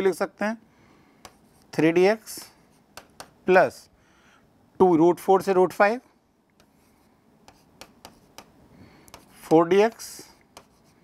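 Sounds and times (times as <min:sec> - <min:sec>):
stylus tapping on touchscreen: 0:01.2 - 0:01.6, 0:02.4 - 0:03.4, 0:06.5 - 0:06.8, 0:07.4 - 0:10.9.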